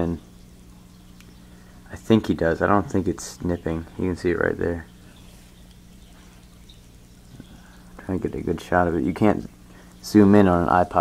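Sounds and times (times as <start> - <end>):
aquarium filter humming: 0.0 - 11.0
faint hiss: 0.8 - 11.0.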